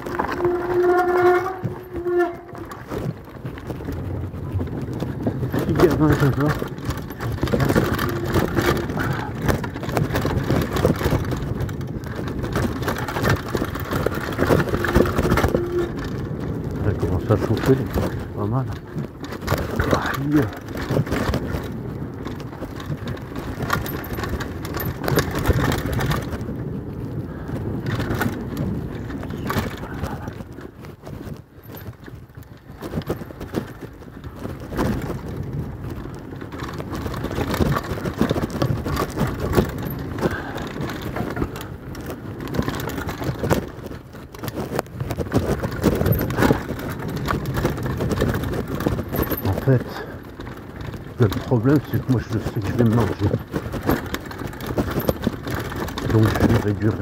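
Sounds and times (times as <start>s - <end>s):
bike knocking and rattling: 0.0s - 57.0s
bike tyres rumbling on dirt trail: 0.0s - 57.0s.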